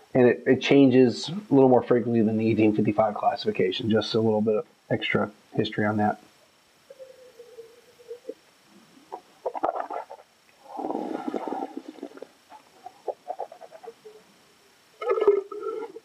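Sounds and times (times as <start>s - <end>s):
gurgling wine in mouth: 9.5s - 13.9s, 15.0s - 16.0s.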